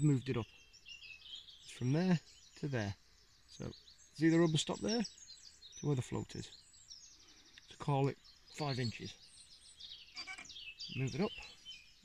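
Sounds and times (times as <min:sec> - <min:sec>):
songbirds singing and chirping: 0:00.0 - 0:12.0.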